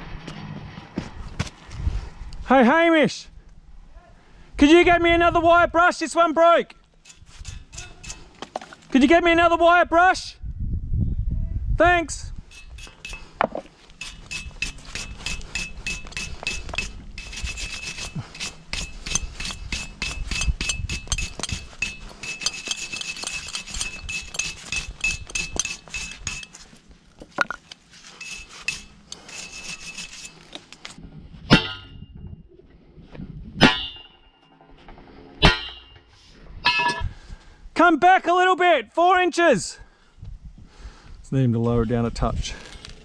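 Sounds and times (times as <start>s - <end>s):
wire brush scrubbing pipe threads: 7.0s - 8.6s, 12.4s - 26.8s, 27.4s - 31.0s
sharp metallic knocks: 7.1s - 8.7s, 12.5s - 26.6s, 31.5s - 32.0s, 33.6s - 34.7s, 35.4s - 37.1s.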